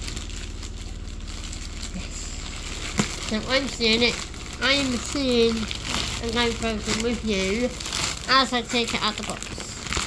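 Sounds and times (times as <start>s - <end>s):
crinkly rustling handling noise: 0.0s - 10.0s
machine humming: 0.0s - 10.0s.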